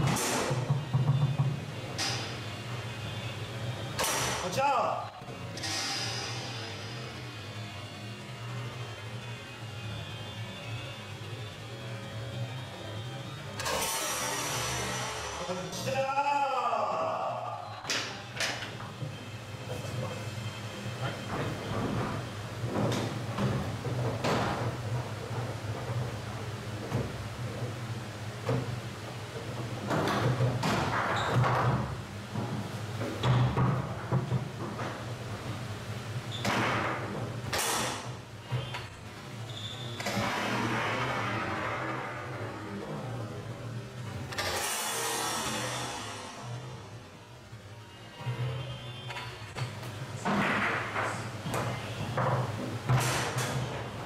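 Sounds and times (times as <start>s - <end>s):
foosball ball knocks and cracks: 36.4s - 38.2s, 49.6s - 54.0s.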